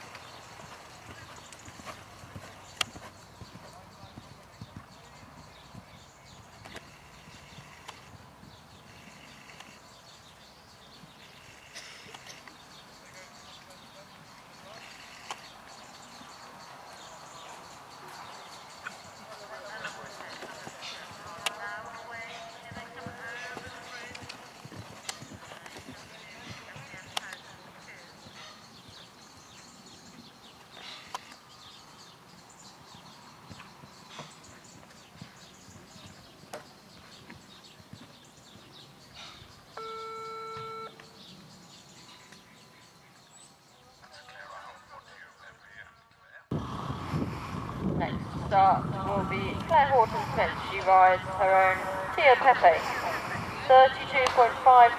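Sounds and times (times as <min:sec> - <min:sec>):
horse hoofbeats on sand: 0:00.0 - 0:11.5, 0:12.6 - 0:30.8, 0:32.9 - 0:39.2
birds chirping: 0:00.0 - 0:54.9
electronic beep: 0:39.8 - 0:41.0
faint background voices: 0:48.0 - 0:54.9.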